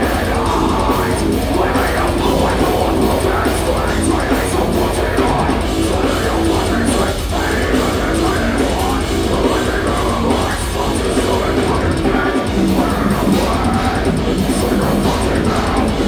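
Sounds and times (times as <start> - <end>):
heavy metal band playing: 0.0 - 16.0
pounding drum kit: 0.0 - 16.0.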